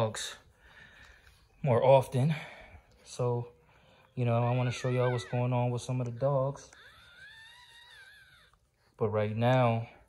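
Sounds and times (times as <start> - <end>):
puppy whining: 4.0 - 9.1.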